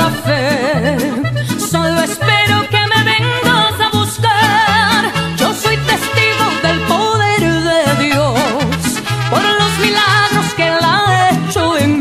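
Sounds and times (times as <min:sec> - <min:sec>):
mariachi band playing: 0:00.0 - 0:12.0
walking bass line: 0:00.0 - 0:12.0.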